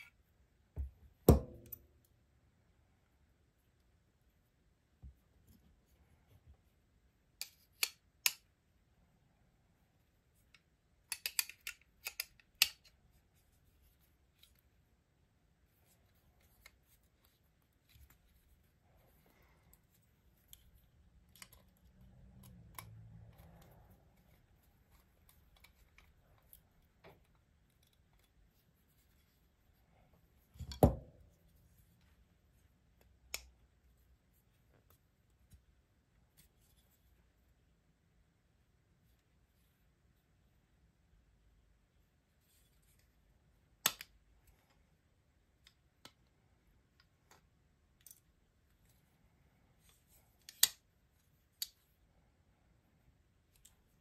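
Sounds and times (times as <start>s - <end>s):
metallic clicks of folding knife: 11.1s - 12.9s.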